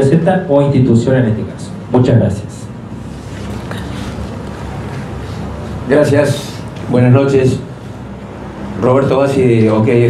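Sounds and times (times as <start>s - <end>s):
rumbling hiss of room noise: 0.0s - 10.0s.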